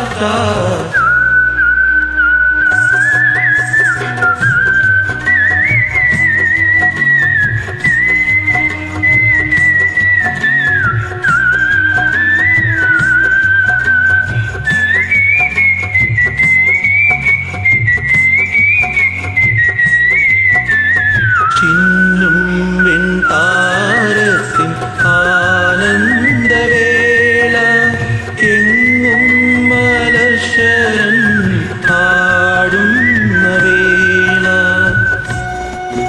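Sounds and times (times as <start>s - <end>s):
karaoke backing track: 0.0s - 36.0s.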